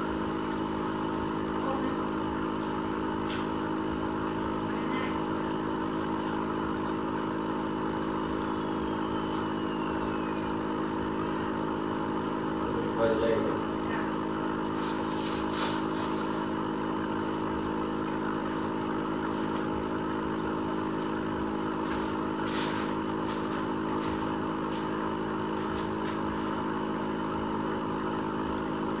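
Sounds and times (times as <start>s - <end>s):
mechanical hum: 0.0s - 29.0s.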